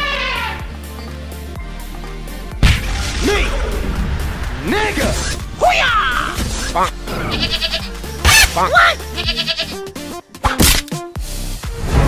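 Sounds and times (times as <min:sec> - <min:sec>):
background music: 0:00.0 - 0:12.0
wavering bleat-like calls: 0:06.1 - 0:09.9.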